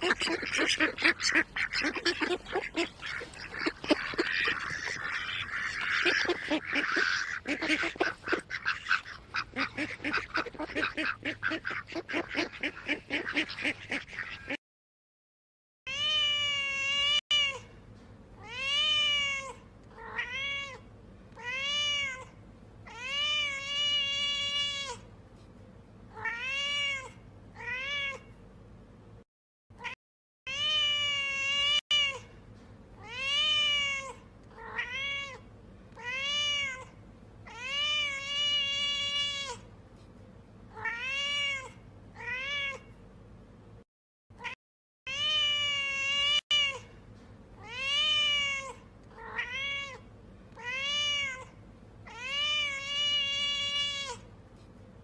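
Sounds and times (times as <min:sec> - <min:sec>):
cat meowing: 0:15.9 - 0:17.6, 0:18.4 - 0:25.0, 0:26.2 - 0:28.3, 0:29.8 - 0:32.3, 0:33.0 - 0:39.7, 0:40.7 - 0:42.9, 0:44.4 - 0:46.9, 0:47.6 - 0:54.3.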